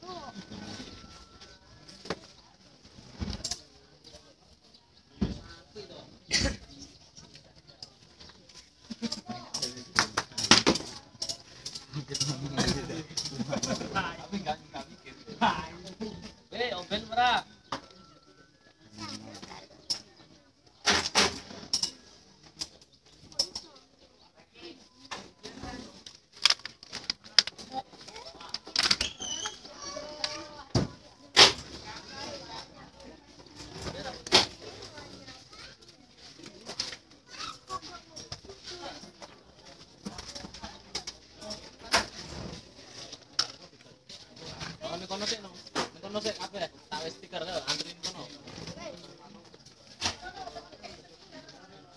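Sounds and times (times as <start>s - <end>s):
people talking: 0.0s - 16.4s.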